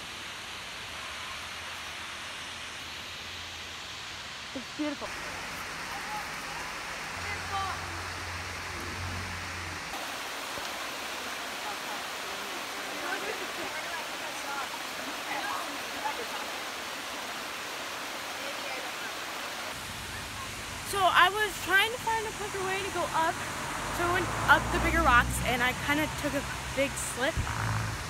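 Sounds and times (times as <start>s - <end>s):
creek running over stones: 0.0s - 28.0s.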